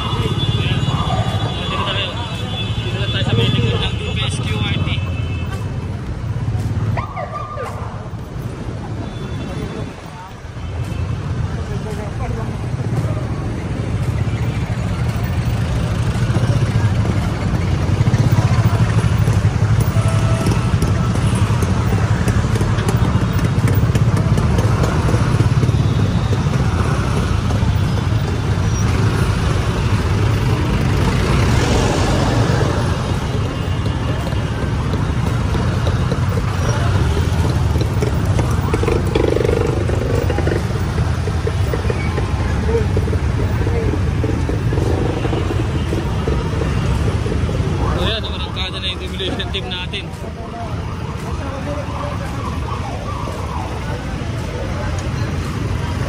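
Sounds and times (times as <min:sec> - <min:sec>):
vehicle engines rumbling: 0:00.0 - 0:56.0.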